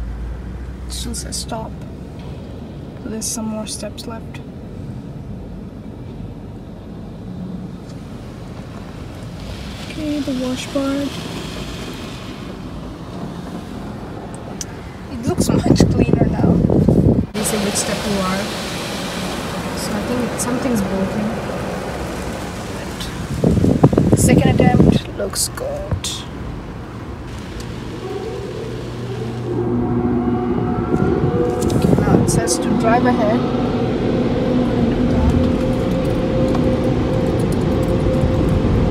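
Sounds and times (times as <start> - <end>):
car wash machinery rushing: 6.5 - 38.9
machine hum of held tones: 27.9 - 38.9.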